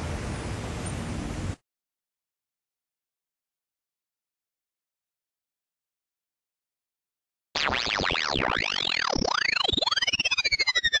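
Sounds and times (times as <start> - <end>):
fast pulsing flutter: 7.6 - 11.0
synthesizer sweeps: 7.6 - 11.0.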